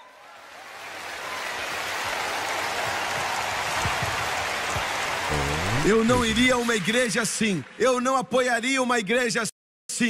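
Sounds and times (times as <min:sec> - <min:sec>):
large audience applauding: 0:00.0 - 0:08.2.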